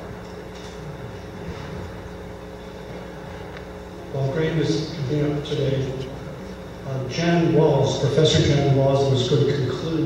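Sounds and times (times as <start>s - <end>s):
low hum and rumble: 0.0s - 10.0s.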